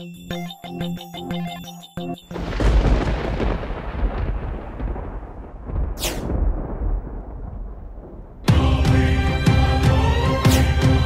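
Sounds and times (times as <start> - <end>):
deep thunder-like rumble: 2.4 - 8.5.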